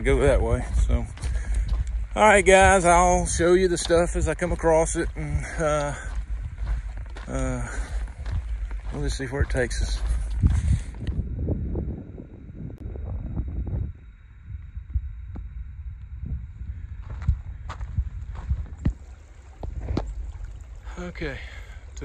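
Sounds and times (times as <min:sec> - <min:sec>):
footsteps on dirt trail: 0:00.0 - 0:11.4, 0:16.5 - 0:22.0
wind rumble on microphone: 0:00.0 - 0:22.0.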